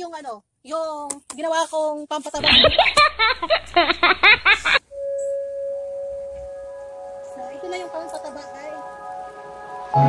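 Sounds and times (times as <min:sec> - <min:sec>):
sustained music bed notes: 0:05.0 - 0:10.0.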